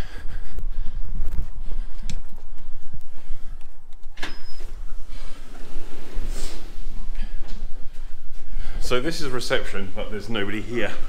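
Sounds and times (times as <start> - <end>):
footsteps: 0.0 - 11.0
clicks: 2.0 - 4.7.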